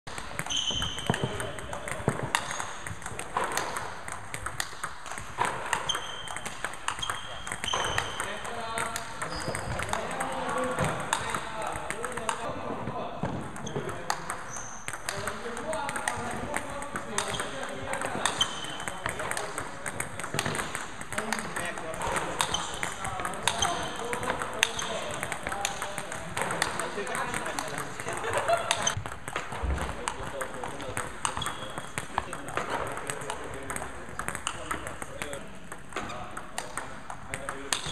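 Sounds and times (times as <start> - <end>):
table tennis balls bouncing: 0.1 - 37.9.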